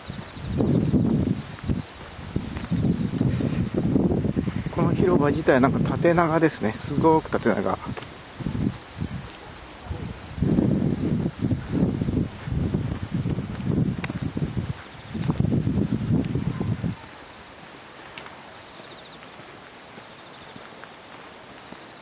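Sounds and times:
wind buffeting microphone: 0:00.0 - 0:21.9.

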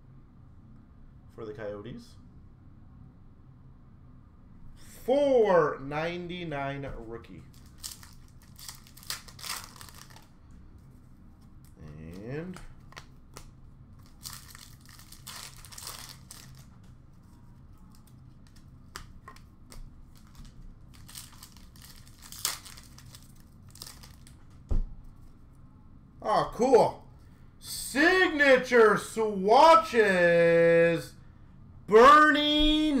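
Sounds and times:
plastic wrapper crinkling and tearing: 0:07.5 - 0:10.3, 0:13.0 - 0:16.9, 0:17.9 - 0:24.4
cards rustling and flipping: 0:07.5 - 0:24.4.

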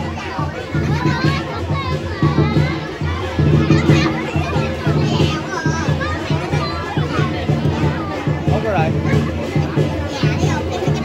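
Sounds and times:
crowd chatter and shouts: 0:00.0 - 0:11.0
drums beating quick rhythm: 0:00.0 - 0:11.0.

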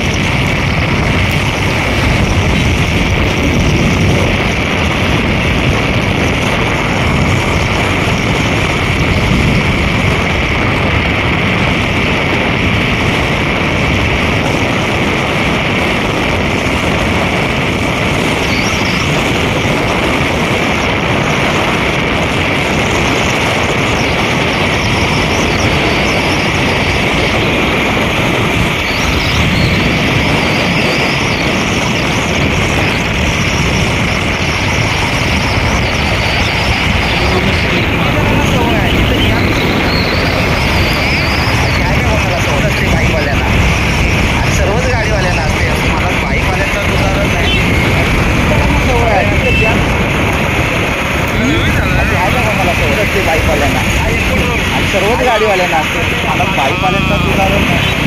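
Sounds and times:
surrounding traffic: 0:00.0 - 0:58.0
wind and road noise: 0:00.0 - 0:58.0.

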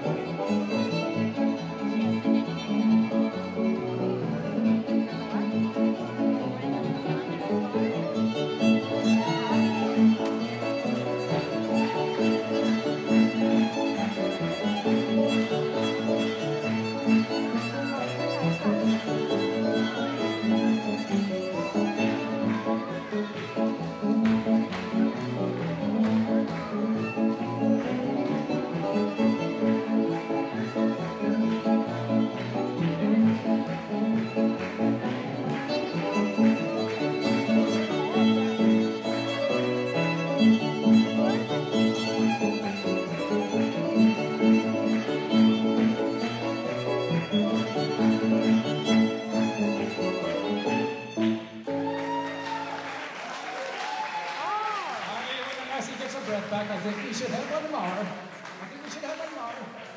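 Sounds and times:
piano accompaniment: 0:00.0 - 0:53.5
fiddle tune: 0:00.0 - 0:54.0.

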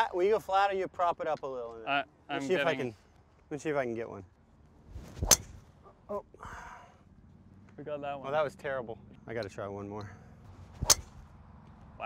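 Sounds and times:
golf club hitting ball: 0:05.2 - 0:05.6, 0:10.7 - 0:11.3.

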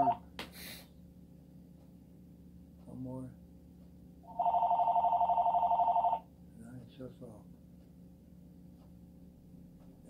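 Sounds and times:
electronic telephone ringing: 0:04.3 - 0:06.3.

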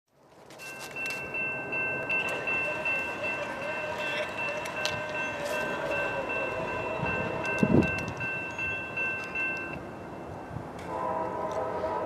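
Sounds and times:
railroad crossing bells ringing: 0:00.5 - 0:12.0.

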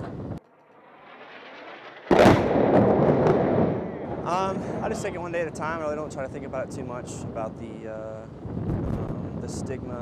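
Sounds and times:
long rolling rumble: 0:00.0 - 0:09.9
artillery blast: 0:01.0 - 0:04.9.

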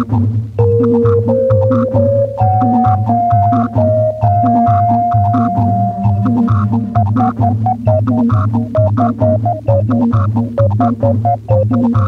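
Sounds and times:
rhythmic electronic music: 0:00.0 - 0:12.0
long held note: 0:00.6 - 0:07.5
repeating low pulse: 0:00.6 - 0:09.6
short organ-like notes: 0:00.6 - 0:09.9.

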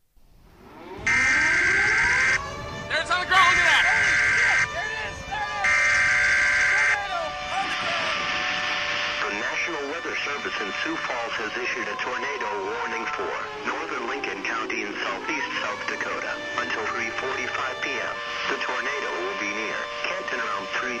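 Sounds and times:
rising alert tones: 0:00.6 - 0:02.6.

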